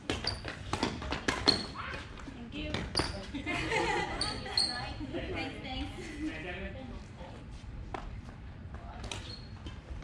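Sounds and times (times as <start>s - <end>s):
shoes squeaking on wooden floor: 0.0s - 3.3s.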